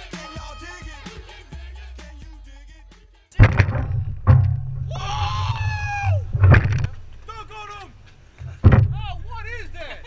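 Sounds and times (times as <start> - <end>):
sharp knock: 3.4 - 5.0, 8.4 - 9.3
man yelling: 4.9 - 6.3, 7.3 - 8.0.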